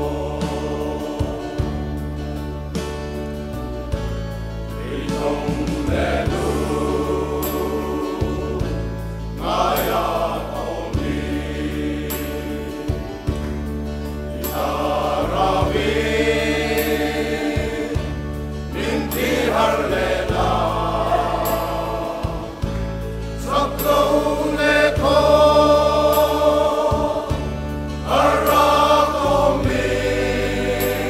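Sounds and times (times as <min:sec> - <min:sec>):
men singing a hymn: 0:00.0 - 0:02.2, 0:04.7 - 0:31.0
sustained low bass notes: 0:00.0 - 0:31.0.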